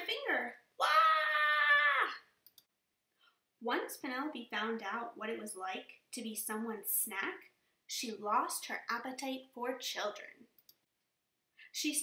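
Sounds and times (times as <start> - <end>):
woman's high wail: 0.8 - 2.2.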